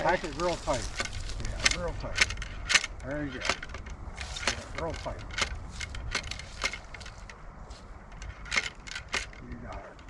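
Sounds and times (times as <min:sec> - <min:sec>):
ramrod knocking in gun barrel: 0:00.9 - 0:07.4, 0:08.1 - 0:10.0.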